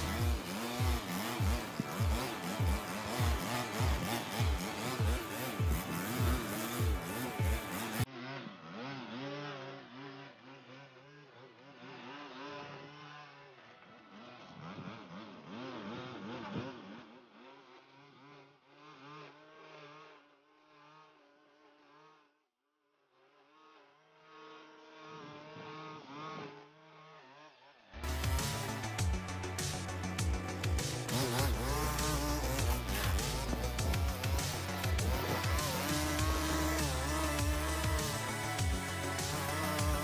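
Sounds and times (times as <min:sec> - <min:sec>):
string trimmer engine revving: 0:00.0 - 0:22.0, 0:23.6 - 0:40.0.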